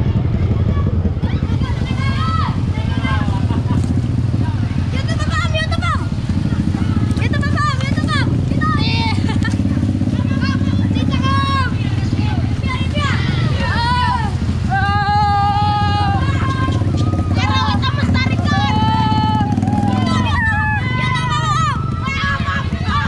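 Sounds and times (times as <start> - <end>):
vehicle engine and road noise: 0.0 - 23.0
people calling out: 0.1 - 23.0.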